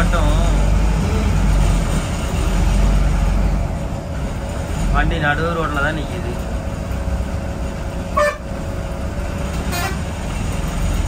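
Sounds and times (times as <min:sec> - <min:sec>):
bus engine rumble: 0:00.0 - 0:11.0
vehicle horn toots: 0:08.2 - 0:08.5, 0:09.7 - 0:10.1.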